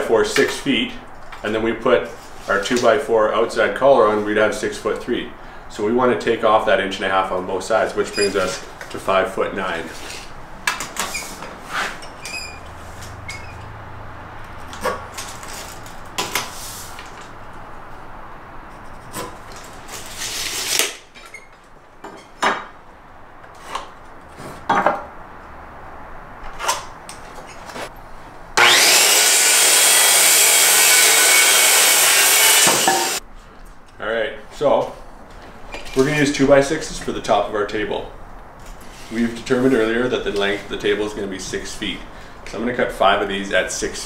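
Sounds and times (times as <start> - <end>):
circular saw cutting board: 28.6 - 33.2.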